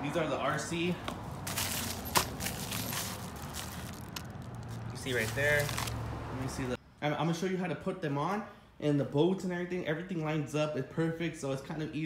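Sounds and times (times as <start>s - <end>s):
plastic and cardboard packaging rustling: 1.1s - 6.0s.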